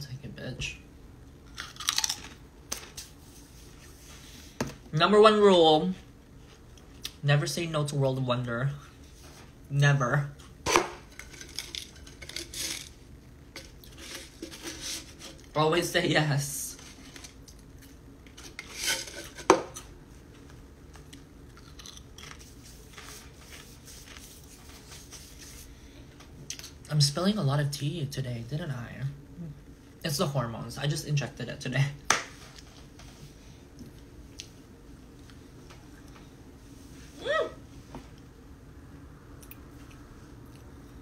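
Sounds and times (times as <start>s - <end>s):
person chewing crunchy snack: 1.5s - 2.4s, 21.1s - 22.5s
can scraping rustle: 11.1s - 13.0s, 13.9s - 15.5s, 18.3s - 19.6s.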